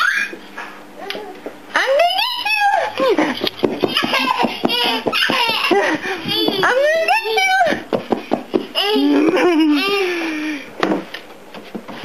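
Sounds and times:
baby laughing: 2.2 - 7.6, 8.8 - 10.2.

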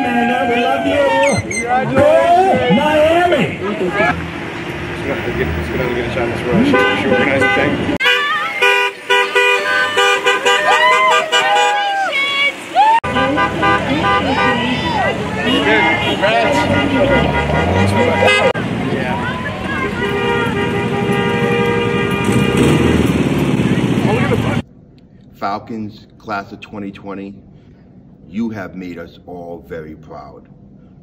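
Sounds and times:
people cheering and shouting: 0.0 - 4.2, 8.0 - 20.6
car horns honking: 5.3 - 24.6.

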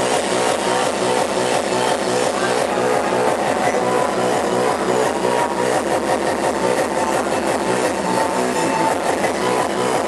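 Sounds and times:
hard techno over club speakers: 0.0 - 10.0.

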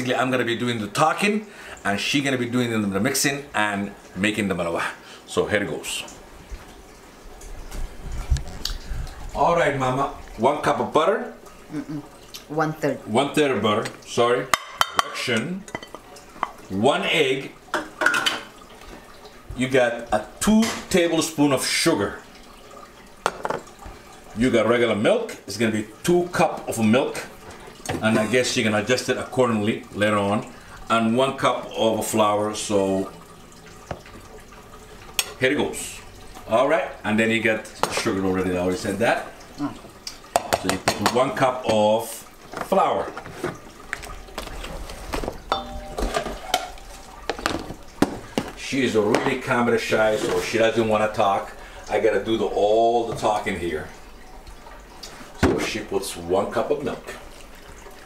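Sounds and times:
utensils and dishes clinking: 13.8 - 16.6, 17.7 - 18.5, 42.5 - 49.5
plastic cup knocking on metal bowl: 23.2 - 23.6
metal bowl ringing: 45.5 - 46.6.

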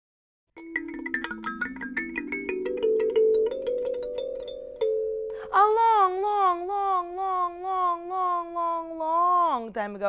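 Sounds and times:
kalimba notes plucked: 0.6 - 5.8.

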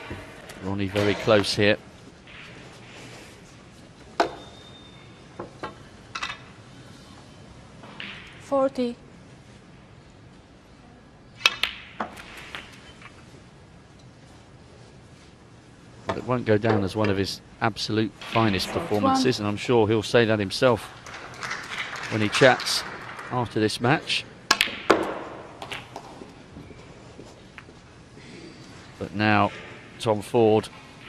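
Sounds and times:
snooker balls clacking: 24.5 - 26.4.

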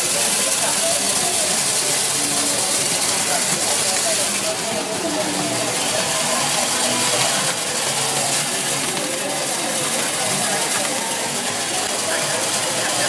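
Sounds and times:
hiss of beans on vibrating tray: 0.0 - 13.0
people talking faintly: 0.0 - 13.0
sorting machine running: 0.0 - 13.0.

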